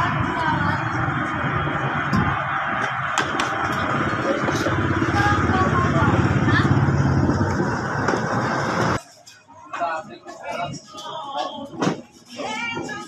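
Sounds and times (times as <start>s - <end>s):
small motorcycle engine running: 0.0s - 9.0s.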